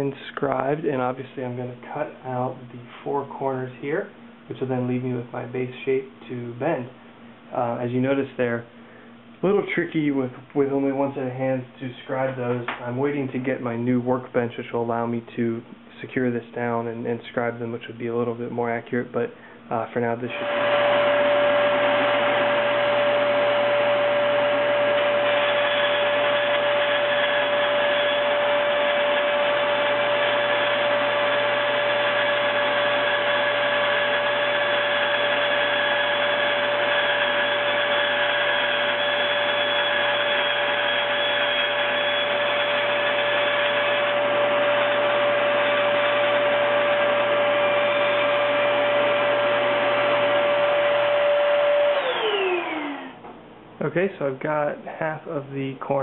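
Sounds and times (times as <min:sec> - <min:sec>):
bandsaw whine: 0:20.2 - 0:54.2.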